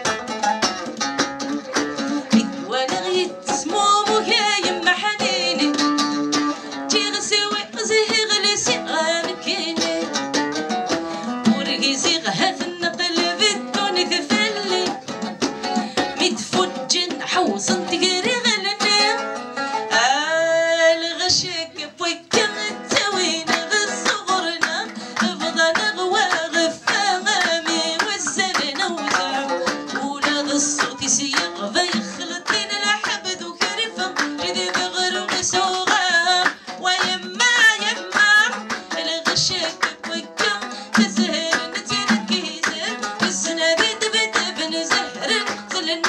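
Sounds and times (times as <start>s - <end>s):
hand drum beating: 0.0s - 19.3s, 22.3s - 46.0s
plucked string accompaniment: 0.0s - 46.0s
woman singing: 1.6s - 46.0s.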